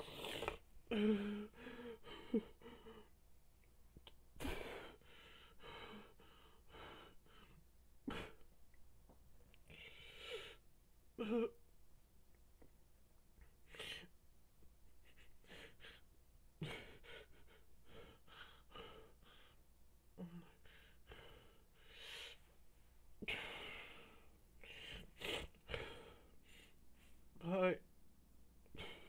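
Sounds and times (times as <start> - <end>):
man sobbing quietly: 16.6 - 19.5.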